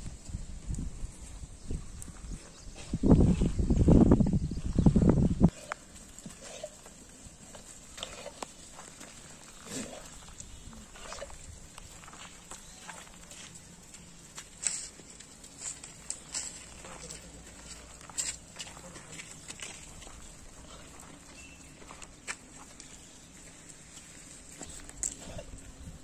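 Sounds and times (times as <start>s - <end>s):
goat hooves shuffling: 0.0s - 26.0s.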